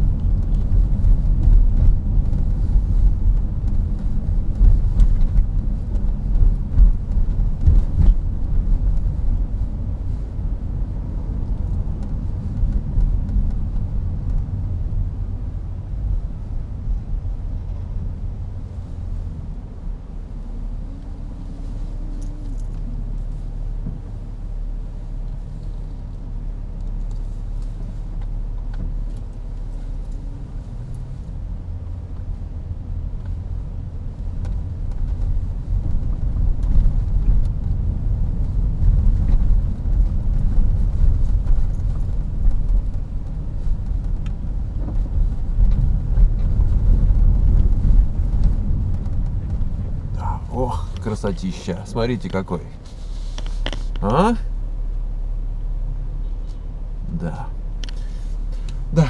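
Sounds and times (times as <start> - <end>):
car engine and road rumble: 0.0 - 59.0.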